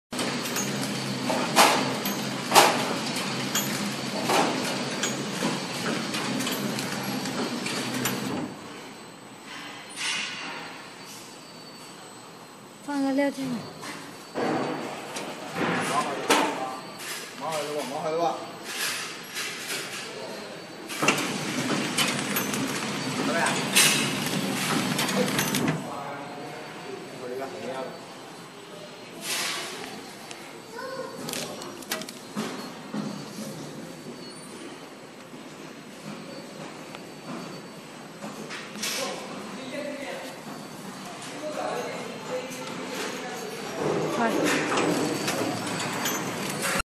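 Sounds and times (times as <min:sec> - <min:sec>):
packing machine running: 0:00.2 - 0:08.6, 0:21.0 - 0:25.9.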